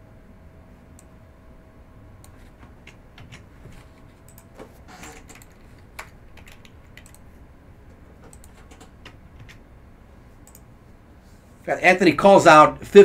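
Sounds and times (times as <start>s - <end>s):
keyboard and mouse clicking: 2.2s - 7.4s, 8.1s - 9.6s, 10.4s - 10.7s.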